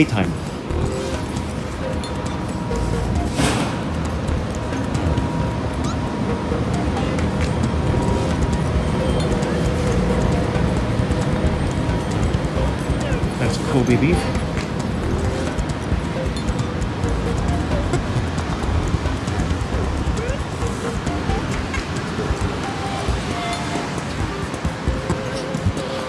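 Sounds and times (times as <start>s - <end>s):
background music: 0.0s - 26.0s
low street noise: 0.0s - 26.0s.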